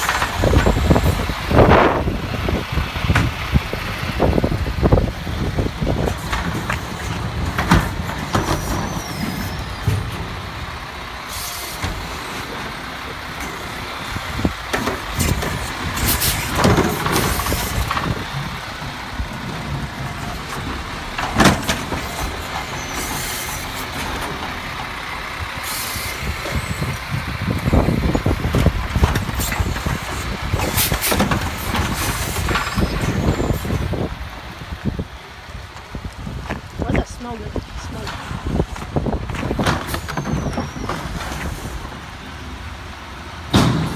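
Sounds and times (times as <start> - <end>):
diesel engine: 0.0 - 43.9
air brakes hissing: 11.2 - 12.4, 15.2 - 16.6, 25.6 - 26.9.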